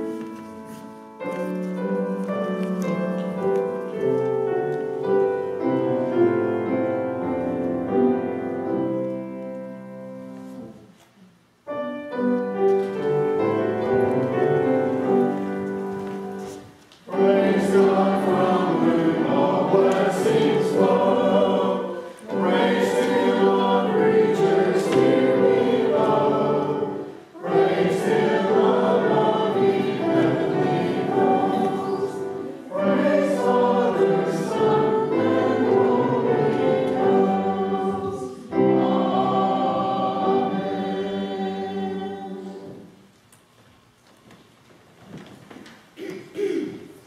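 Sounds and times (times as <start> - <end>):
church choir singing: 0.0 - 10.9, 12.6 - 43.1.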